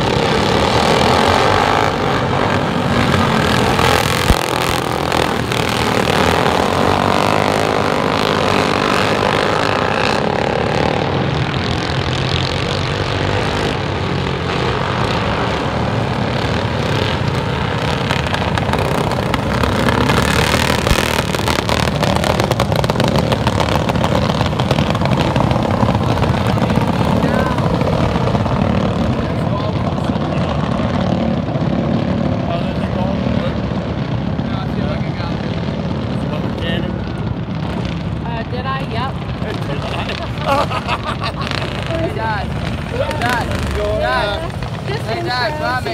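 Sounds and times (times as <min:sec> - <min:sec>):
racing lawn mower engines: 0:00.0 - 0:45.9.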